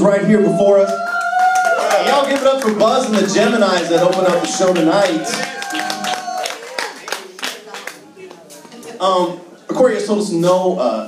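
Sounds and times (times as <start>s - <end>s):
audience clapping: 1.0s - 9.0s
voices in room: 1.4s - 11.0s.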